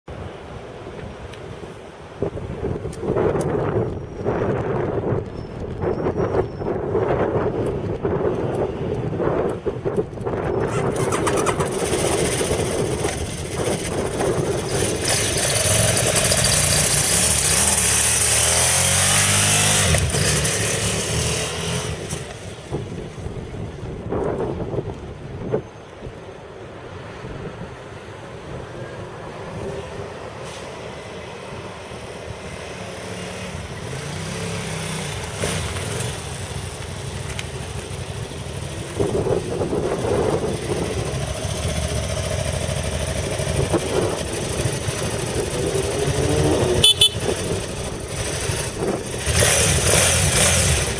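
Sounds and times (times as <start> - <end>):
motorcycle engine accelerating: 10.4 - 22.5, 33.0 - 36.9, 37.6 - 50.9.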